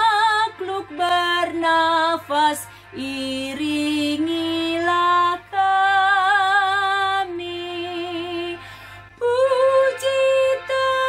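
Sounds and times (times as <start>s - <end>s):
woman singing a hymn: 0.0s - 11.0s.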